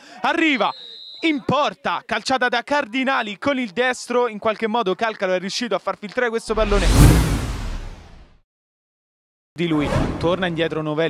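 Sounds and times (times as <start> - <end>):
whoosh sound effect: 6.5 - 8.4.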